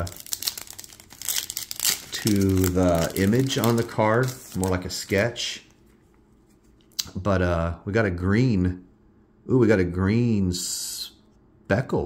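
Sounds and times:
wrapper crinkling and tearing: 0.0s - 5.2s.

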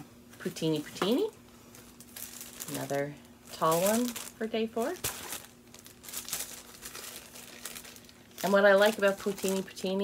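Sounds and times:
paper packet crinkling: 1.6s - 10.0s.

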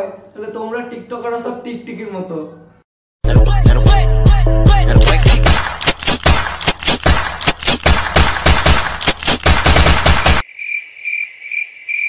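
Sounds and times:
rapid percussive hits: 5.0s - 10.4s
crickets chirping: 10.4s - 12.0s.

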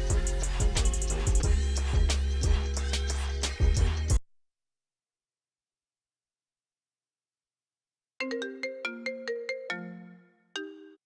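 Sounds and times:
bell-like ringtone melody: 8.2s - 11.0s.

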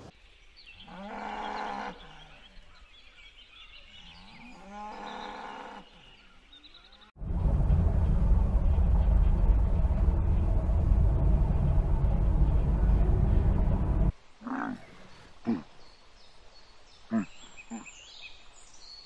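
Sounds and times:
loud steady low noise: 7.2s - 14.1s.

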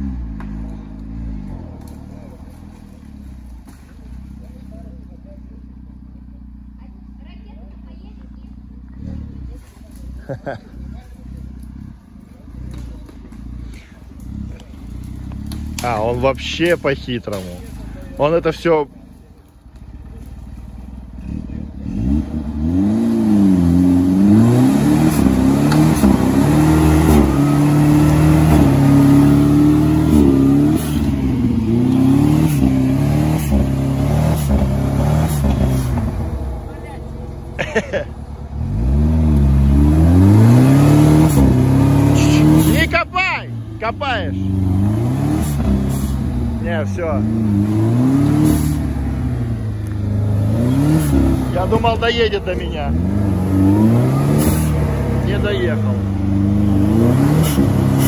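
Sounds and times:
engine revving hard: 21.2s - 36.4s, 38.6s - 58.0s.

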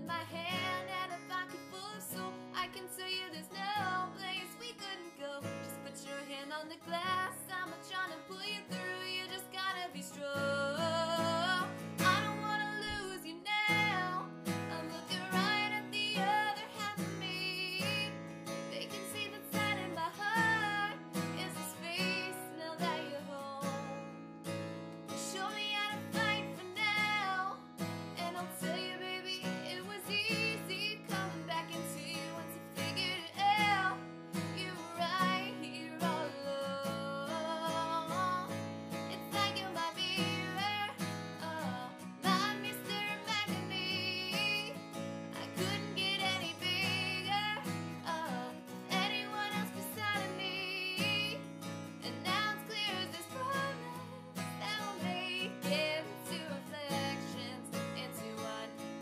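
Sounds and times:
strummed acoustic guitar: 0.0s - 59.0s
woman singing: 0.0s - 59.0s.

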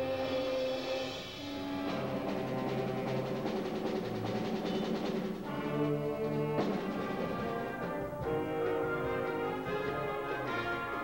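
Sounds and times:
wind band playing chords: 0.0s - 11.0s.

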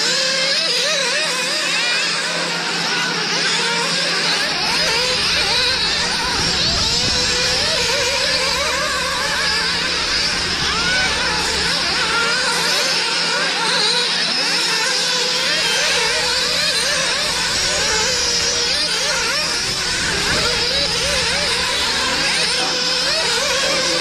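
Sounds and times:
model car engines whining: 0.0s - 24.0s.

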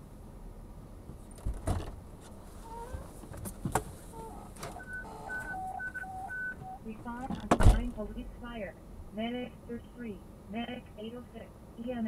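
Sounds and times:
two-pitch electronic beeps: 4.8s - 6.8s.

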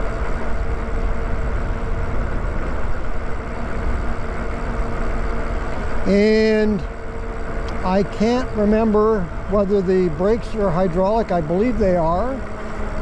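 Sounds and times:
wind rushing over microphone: 0.0s - 10.7s
steady low hum: 0.0s - 13.0s.

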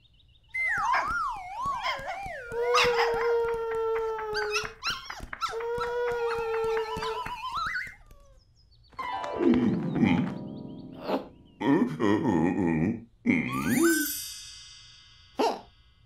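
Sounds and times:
cartoon dog howling: 0.6s - 8.4s.

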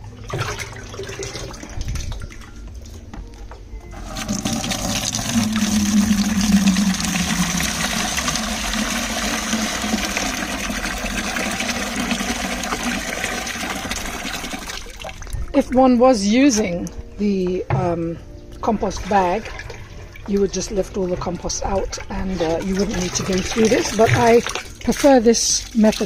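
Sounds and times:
liquid pouring into bucket: 0.2s - 2.2s, 3.9s - 15.4s, 22.2s - 26.0s.

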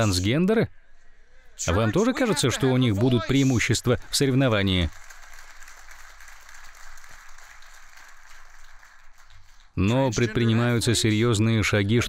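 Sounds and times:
audience applause: 4.0s - 9.8s.

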